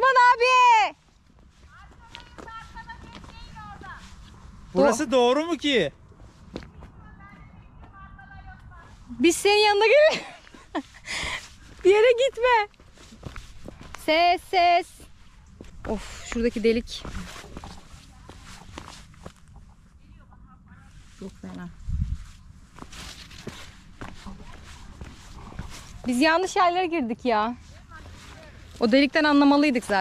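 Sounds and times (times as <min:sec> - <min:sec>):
footstep: 0:00.4 - 0:04.8, 0:06.0 - 0:09.1, 0:10.0 - 0:19.8, 0:21.0 - 0:30.0
wind rumble on microphone: 0:15.3 - 0:26.1.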